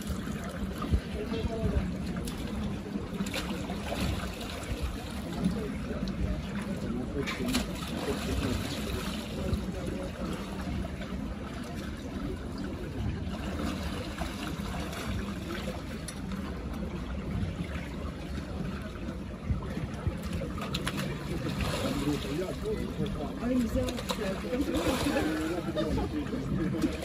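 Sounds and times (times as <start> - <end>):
running water: 0.0 - 27.0
water splashing and sloshing: 0.0 - 27.0.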